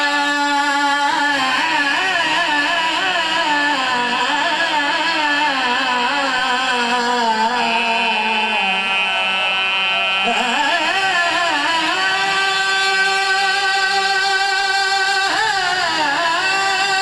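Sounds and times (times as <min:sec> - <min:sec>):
men singing lament over pa: 0:00.0 - 0:17.0.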